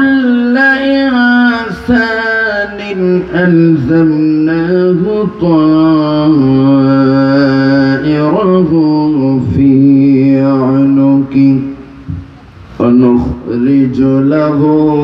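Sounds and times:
man chanting recitation: 0.0s - 15.0s.

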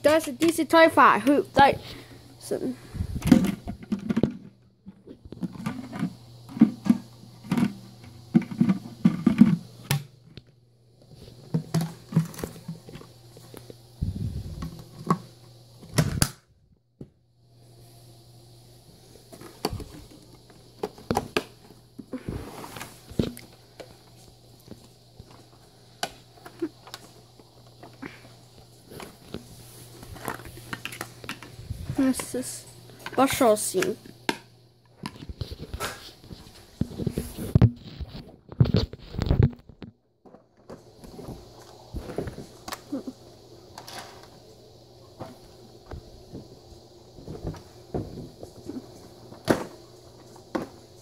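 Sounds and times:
faint low hum: 0.0s - 51.0s.

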